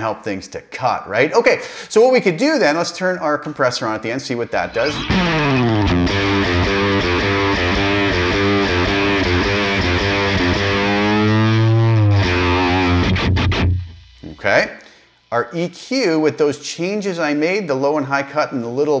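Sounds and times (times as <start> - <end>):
distorted electric guitar riff: 4.3 - 15.7.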